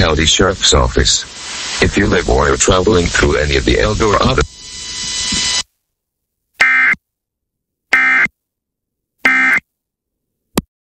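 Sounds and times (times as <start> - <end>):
raspy digital data bursts: 0.0 - 5.6
broadcast hiss: 0.0 - 5.8.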